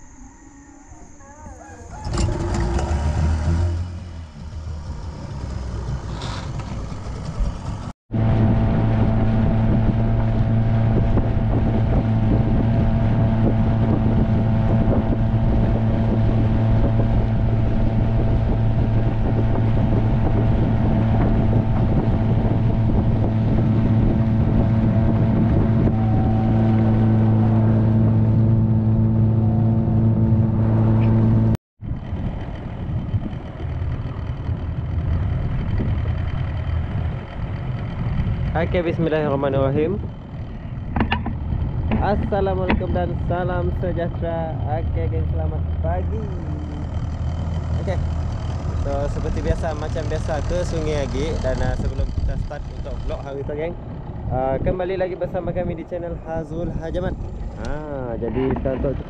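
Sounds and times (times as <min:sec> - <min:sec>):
small boat motor humming: 0:00.0 - 0:59.0.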